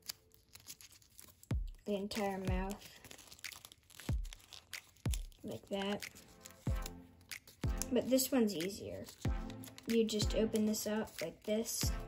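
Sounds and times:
paper crinkling: 0:00.0 - 0:11.8.

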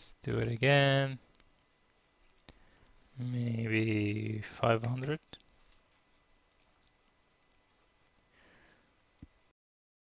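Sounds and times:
soft hiss: 0:00.0 - 0:09.5
keystroke or mouse click: 0:07.4 - 0:07.6.

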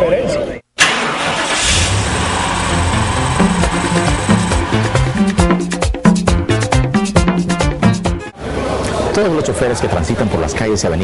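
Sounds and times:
car engine starting and revving: 0:00.8 - 0:05.6
rhythmic beat: 0:02.7 - 0:08.3
title music: 0:02.7 - 0:08.3.

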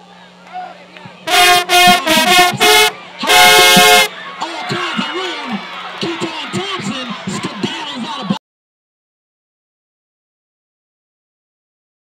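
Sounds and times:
crowd voices: 0:00.0 - 0:08.4
baritone horns playing brass solo: 0:01.3 - 0:04.1.

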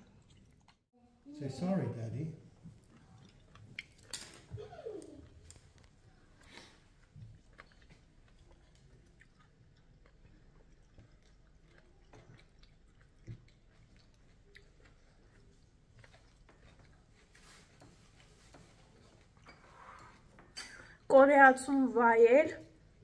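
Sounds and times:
person chewing food: 0:00.0 - 0:00.9, 0:02.6 - 0:21.1.

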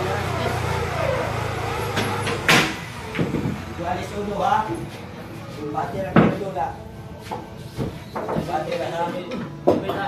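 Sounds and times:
low engine-like hum: 0:00.0 - 0:04.4
billiard balls clacking: 0:07.8 - 0:10.0.

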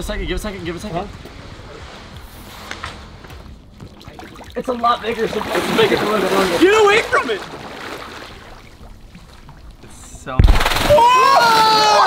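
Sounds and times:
faint water splashing: 0:00.0 - 0:12.0
water trickling: 0:03.2 - 0:10.9.

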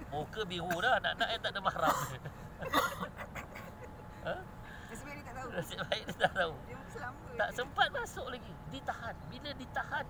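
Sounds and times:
open-air background murmur: 0:00.0 - 0:10.0.

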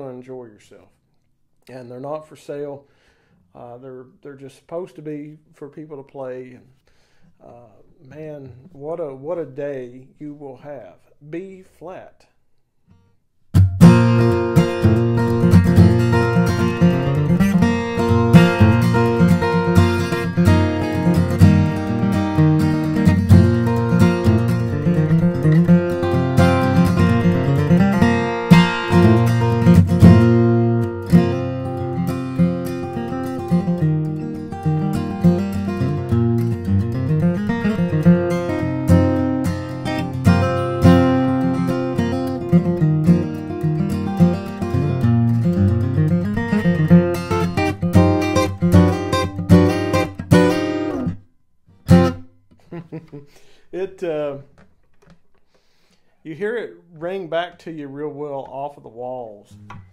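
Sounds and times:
acoustic guitar playing: 0:12.9 - 0:58.7, 0:59.5 - 0:59.9.

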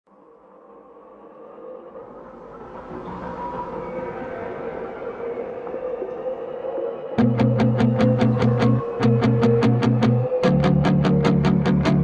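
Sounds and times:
rumbling drone with held tone: 0:07.2 - 0:12.0.

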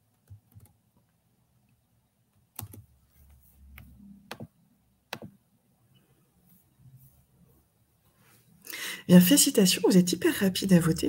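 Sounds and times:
computer keyboard clicks: 0:00.2 - 0:00.8, 0:02.6 - 0:02.9, 0:03.8 - 0:04.5.

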